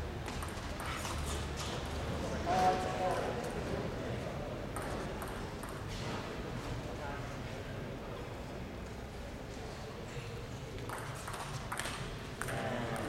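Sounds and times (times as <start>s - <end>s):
murmur of the hall: 0.0s - 13.0s
table tennis ball clicks: 10.8s - 13.0s.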